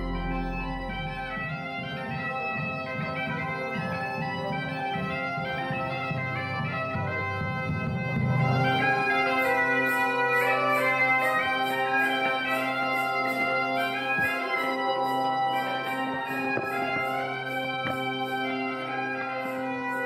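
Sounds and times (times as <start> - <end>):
bagpipe melody over drone: 0.0 - 20.0
light rhythmic percussion: 0.0 - 20.0.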